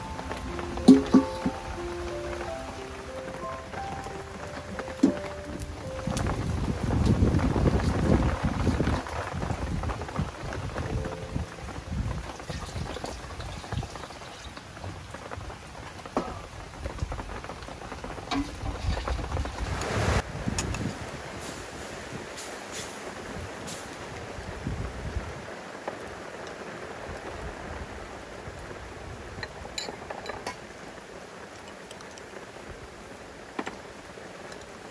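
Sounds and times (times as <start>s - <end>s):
background music: 0.0s - 8.1s, 10.3s - 12.6s
food sizzling with crackles: 0.0s - 34.9s.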